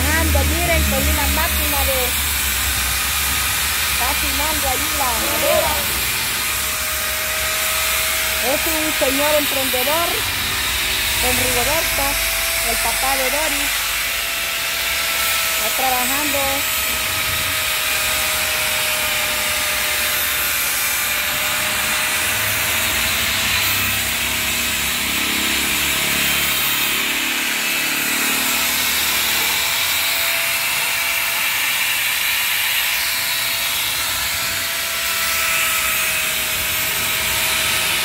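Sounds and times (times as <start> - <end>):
angle grinder motor whine: 0.0 - 38.0
grinder disc rasping wood: 0.0 - 38.0.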